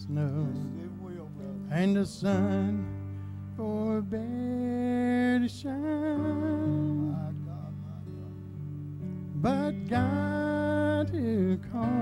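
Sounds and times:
solo voice singing with vibrato: 9.4s - 12.0s.

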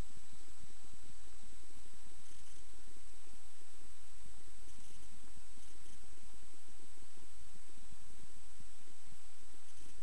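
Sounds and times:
thin steady high tone: 0.0s - 10.0s.

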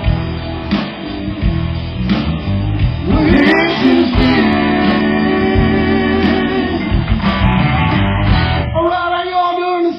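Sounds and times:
electric guitars: 0.0s - 9.2s
drums: 0.0s - 9.9s.

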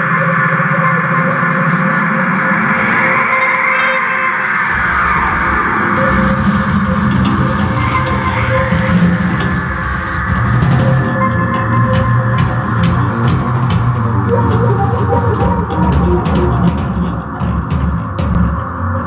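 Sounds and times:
drums and cymbals: 0.0s - 18.6s
electric guitar: 0.0s - 19.0s
rock band playing: 2.1s - 18.6s
deep low bass: 4.7s - 19.0s.

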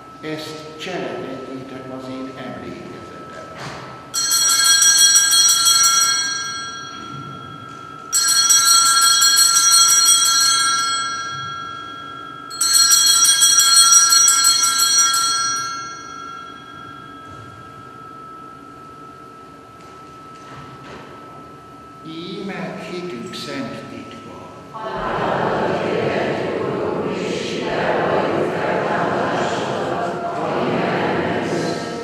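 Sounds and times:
altar bells jingling: 4.2s - 24.2s.

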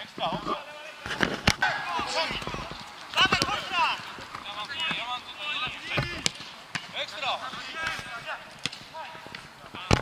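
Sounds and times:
players shouting: 1.6s - 9.8s.

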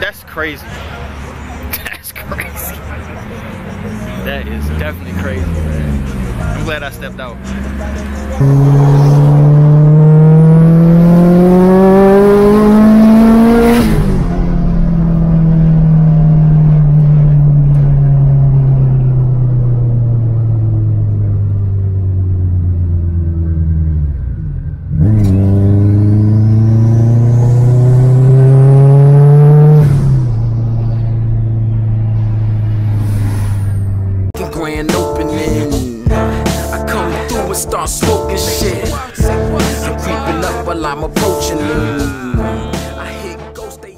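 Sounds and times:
car engine pulling hard: 0.4s - 34.4s.

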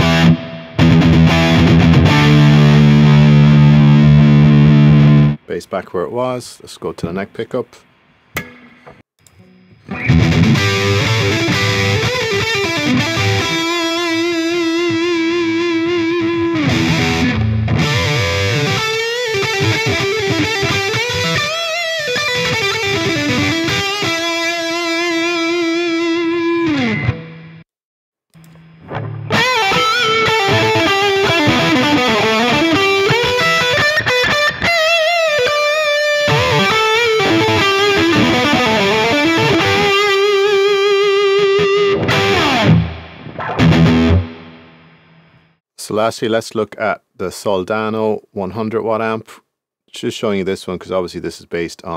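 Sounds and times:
distorted electric guitar lead: 0.0s - 5.4s, 8.6s - 27.6s, 28.4s - 45.6s.

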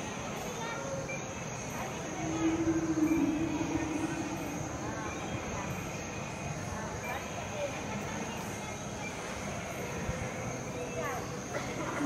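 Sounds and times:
people chattering in a hall: 0.0s - 12.0s
low drawn-out tone: 2.0s - 6.8s.

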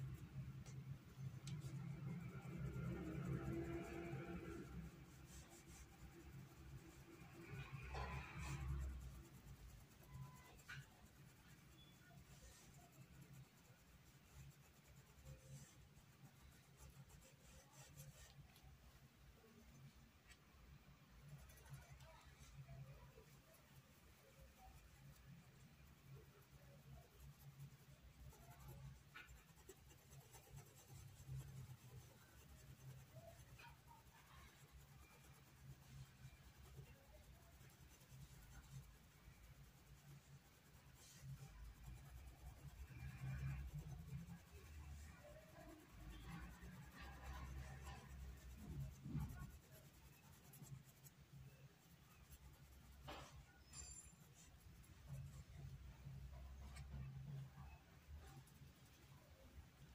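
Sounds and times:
low steady hum: 0.0s - 59.9s
paintbrush scratching on fabric: 0.0s - 59.9s.

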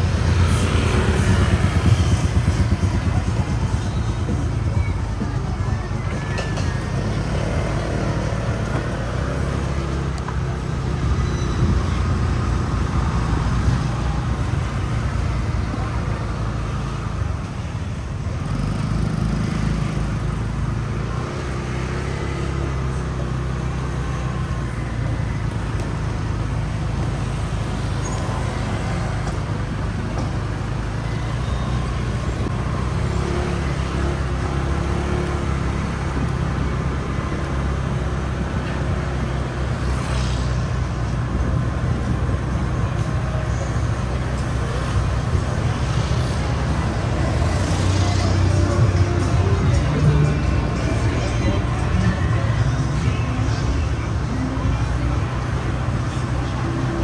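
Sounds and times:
low rumble of traffic: 0.0s - 57.0s
motor scooters passing: 0.0s - 57.0s.

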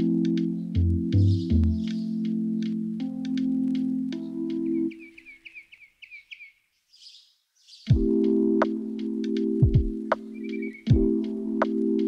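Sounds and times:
lo-fi beat: 0.0s - 5.0s, 7.9s - 12.0s
bird chirping rapidly: 4.6s - 7.9s, 10.3s - 10.9s.

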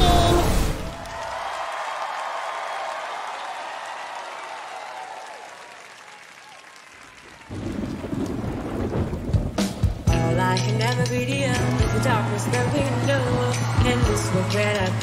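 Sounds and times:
audience applause: 0.0s - 9.4s, 11.7s - 15.0s
band music: 9.6s - 15.0s.

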